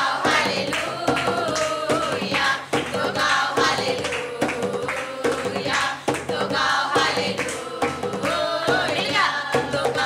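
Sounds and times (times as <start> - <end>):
women's choir singing worship song: 0.0 - 10.0.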